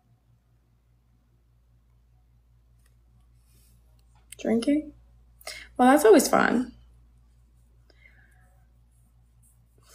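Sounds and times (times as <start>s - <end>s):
faint low hum: 0.0s - 9.9s.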